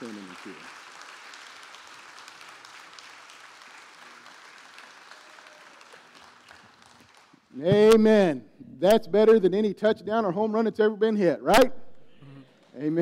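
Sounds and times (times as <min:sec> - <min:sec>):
congregation applauding: 0:00.0 - 0:08.1.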